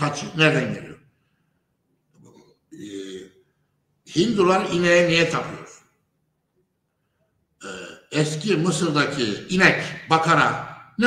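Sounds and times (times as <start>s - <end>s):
man's drawn-out hesitation sound: 2.7s - 3.4s.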